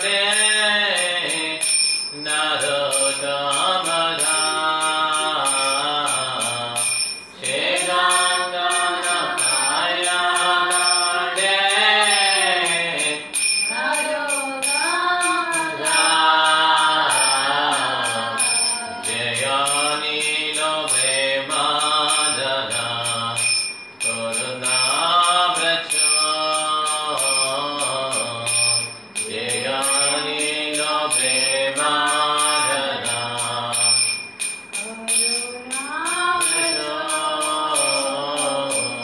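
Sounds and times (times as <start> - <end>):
man chanting melodically: 0.0 - 13.3, 15.6 - 34.1, 36.4 - 39.0
high metallic ticking: 0.0 - 39.0.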